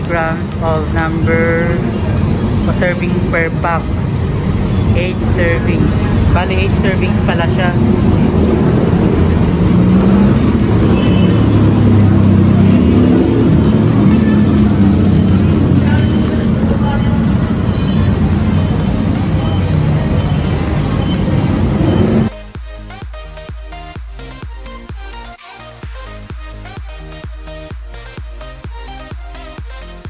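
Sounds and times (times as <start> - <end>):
indistinct voices: 0.0 - 22.3
background music: 0.0 - 30.0
upbeat electronic music: 0.0 - 30.0.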